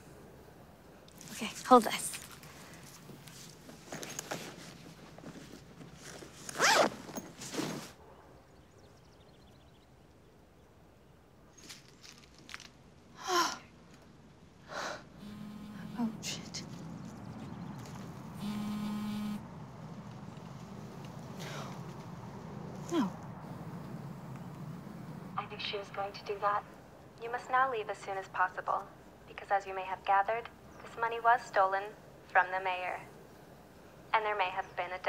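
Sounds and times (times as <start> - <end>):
bag contents rustling: 1.2 - 8.0
handbag zipper opening: 6.4 - 7.9
low steady buzz: 13.2 - 35.0.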